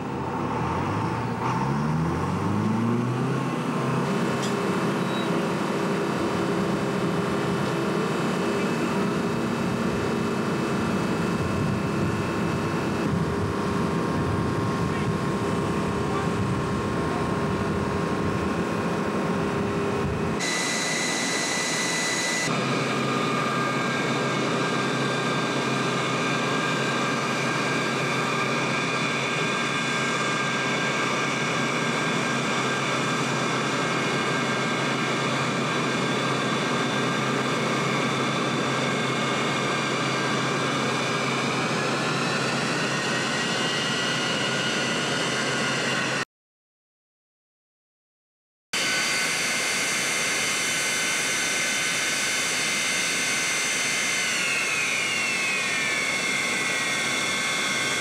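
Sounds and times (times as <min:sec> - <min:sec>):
jet turbine whine: 0:00.0 - 0:46.3, 0:48.8 - 0:58.0.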